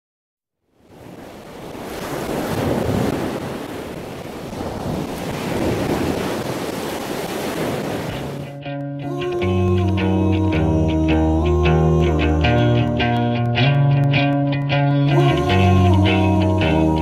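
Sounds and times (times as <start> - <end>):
wind: 0.6 - 8.6
ocean waves: 0.7 - 9.4.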